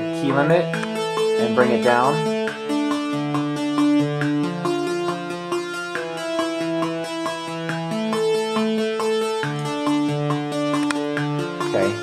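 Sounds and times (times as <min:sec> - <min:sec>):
synthesizer arpeggio run: 0:00.0 - 0:12.0.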